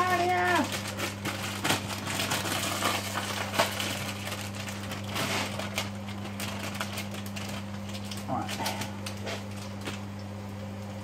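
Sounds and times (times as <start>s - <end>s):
food handling clicks and rustles: 0.0s - 10.2s
steady low hum: 0.0s - 11.0s.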